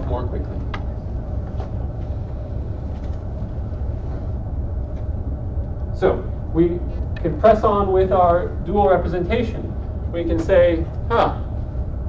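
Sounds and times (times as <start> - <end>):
low room background rumble: 0.0 - 12.0.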